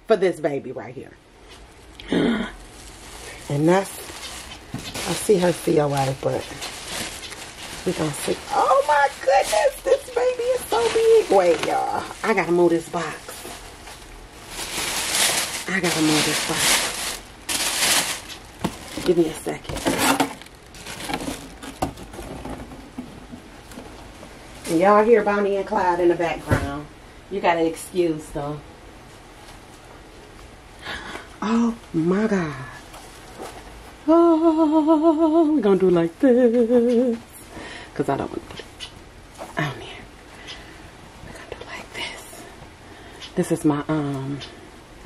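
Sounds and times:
cardboard box rustling: 2.8 - 24.0
woman whispering: 39.6 - 40.1, 41.3 - 42.6.

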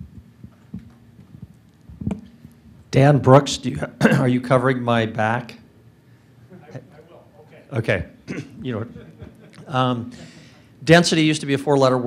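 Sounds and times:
microphone handling thumps: 0.0 - 2.5.

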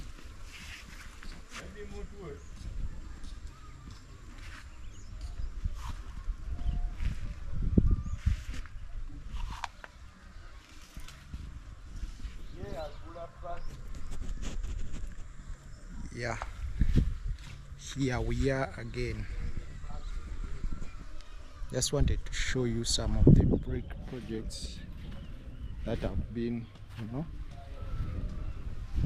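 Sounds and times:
rustling and footsteps: 0.0 - 29.0
wind on microphone: 2.1 - 29.0.

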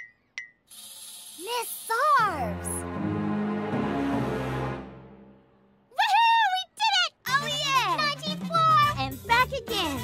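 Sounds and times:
cartoon children exclaiming: 5.9 - 9.0.

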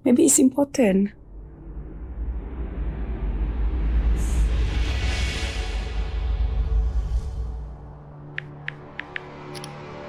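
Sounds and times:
deep suspense music drone: 1.1 - 10.0.

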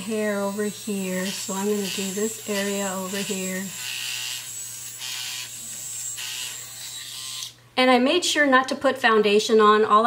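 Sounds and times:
facial hair remover buzzing: 0.0 - 7.6.

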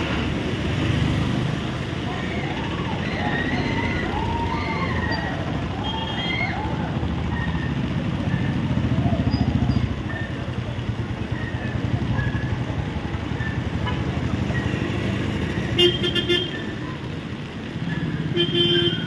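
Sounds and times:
voices calling out: 0.0 - 18.7
vehicles passing on wet road: 0.0 - 19.0.

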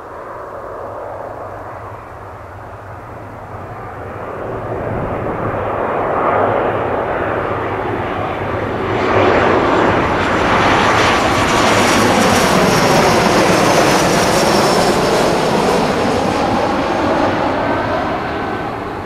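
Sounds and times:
jet engines roaring overhead: 0.0 - 19.0.

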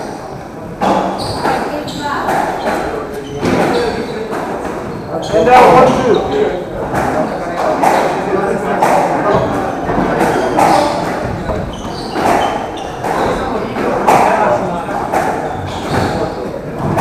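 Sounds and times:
spectators chatting: 0.0 - 17.0
squash ball thuds echoing: 0.0 - 17.0.

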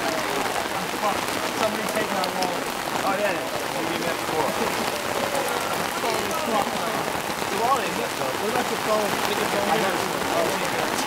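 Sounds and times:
heavy rain on wet pavement: 0.0 - 11.0
voices talking: 0.0 - 11.0.

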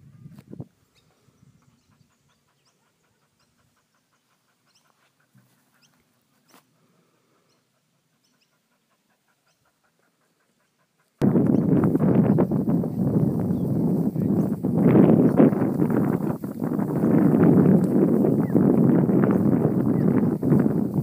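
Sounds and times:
dog panting: 1.6 - 6.9, 7.5 - 11.2.

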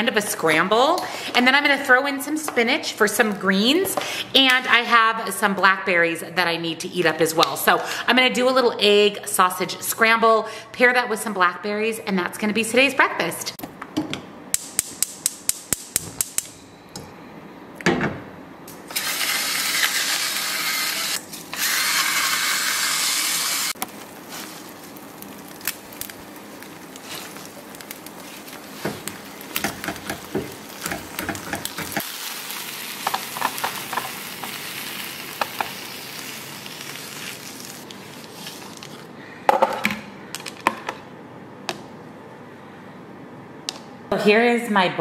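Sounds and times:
stove spark igniter clicking: 14.5 - 16.5
food sizzling in a frying pan: 19.0 - 38.2
spatula tapping and scraping pan: 28.8 - 32.0.

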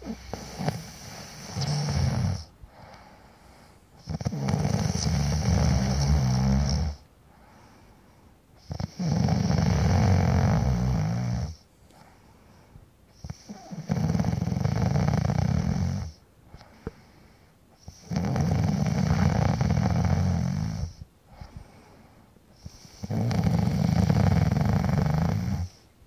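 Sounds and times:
man snoring loudly: 0.0 - 2.5, 4.0 - 7.0, 8.6 - 11.6, 13.2 - 16.2, 17.9 - 21.0, 23.0 - 25.8.

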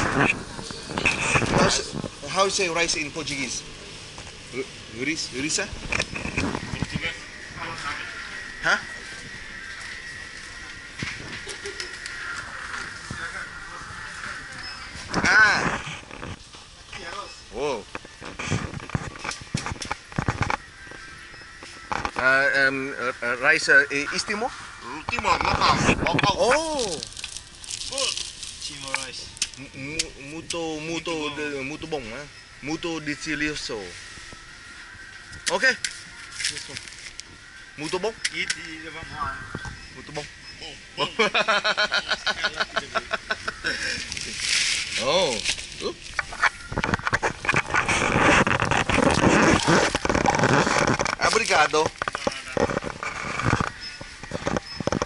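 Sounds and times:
murmur of shoppers: 0.0 - 21.9
faint high whine: 0.0 - 47.2.

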